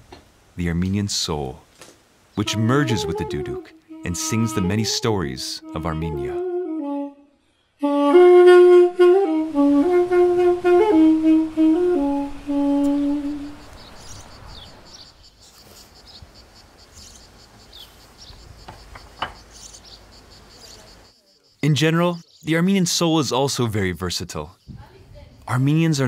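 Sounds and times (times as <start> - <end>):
faint background noise: 0.0 - 6.4, 9.4 - 26.0
double-reed pipe playing slow notes: 2.4 - 13.8.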